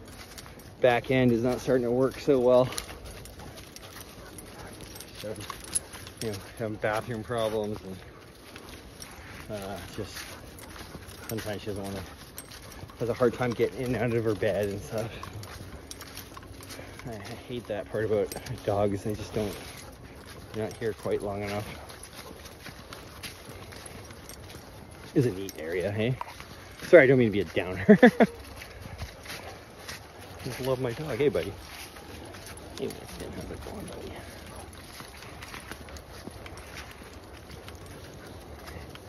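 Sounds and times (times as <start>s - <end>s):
footsteps rustling through leaves: 1.3s - 39.0s
man speaking: 11.3s - 12.1s, 13.0s - 15.3s, 17.0s - 19.6s, 20.5s - 21.8s, 25.1s - 26.2s, 26.9s - 28.0s, 30.4s - 31.6s, 32.8s - 34.3s.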